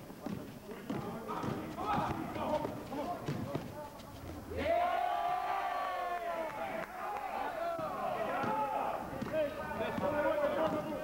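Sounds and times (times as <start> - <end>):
basketball bouncing on court: 0.2 - 3.8.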